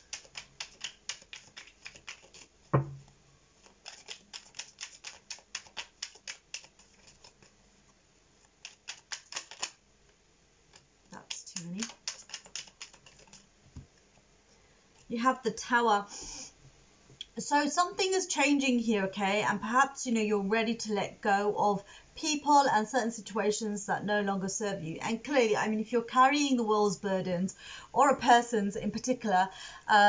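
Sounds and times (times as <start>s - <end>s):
cards being shuffled: 0.0s - 2.8s, 3.6s - 7.5s, 8.5s - 9.8s, 10.7s - 13.5s
sharp knock: 2.7s - 3.0s.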